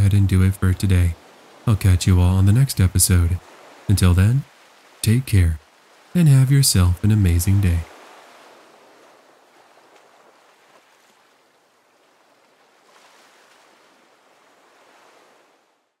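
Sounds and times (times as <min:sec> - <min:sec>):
faint even rushing noise: 0:00.0 - 0:07.9.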